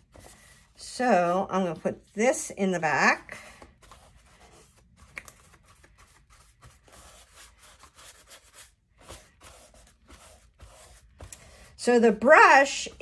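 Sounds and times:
paper rustling and scraping: 3.4 - 11.7.

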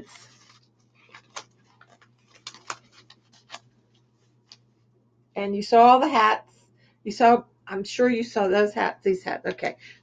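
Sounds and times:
yarn and paper label crinkling: 0.0 - 4.7.

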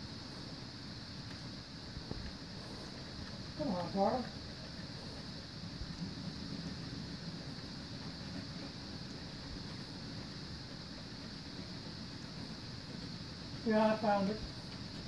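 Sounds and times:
model train cars rolling on track: 0.0 - 15.0.

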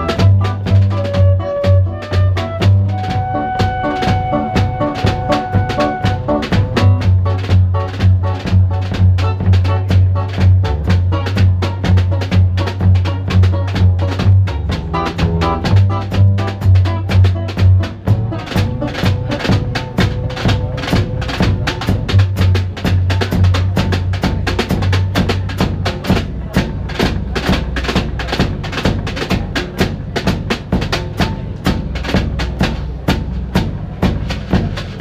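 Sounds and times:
double bass line: 0.0 - 35.0
drum kit beat: 0.0 - 35.0.

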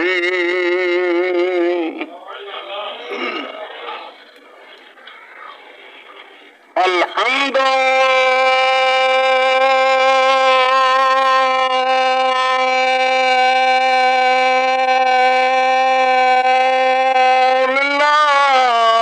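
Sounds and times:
man singing long note: 6.9 - 19.0.

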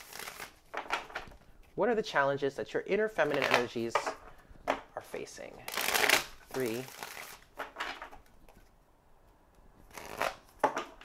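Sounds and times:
cards riffle-shuffled: 0.0 - 1.8, 3.2 - 4.1, 5.1 - 8.7, 9.9 - 10.9.

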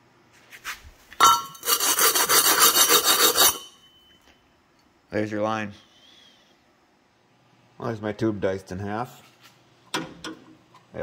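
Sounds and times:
metal tube rasping on concrete: 1.6 - 3.8.

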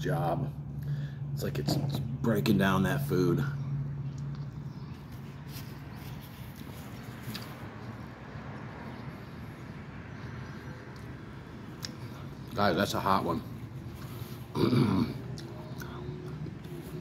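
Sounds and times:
man chewing food: 3.9 - 12.6, 13.6 - 17.0.

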